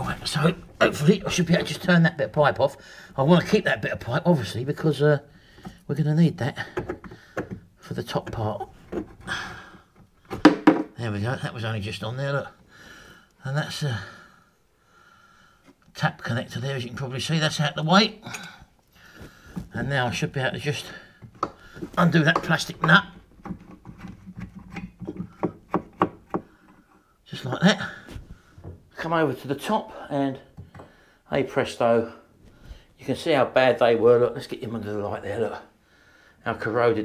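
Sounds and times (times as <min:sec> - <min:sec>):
sharp knocks of pipe fitting: 0:06.8 - 0:07.7
hand knocking against pipework: 0:21.2 - 0:26.5.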